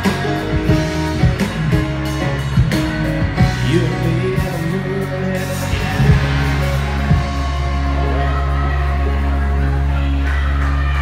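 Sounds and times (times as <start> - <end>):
live country band playing: 0.0 - 11.0.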